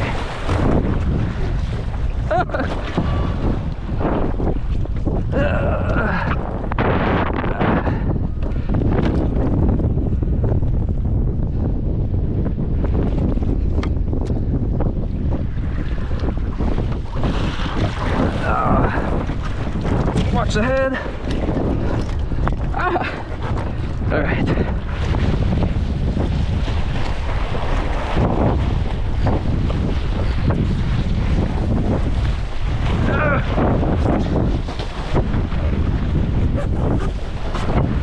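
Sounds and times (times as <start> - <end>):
water sloshing: 0.0 - 6.3, 16.8 - 25.7
wind buffeting microphone: 0.0 - 38.0.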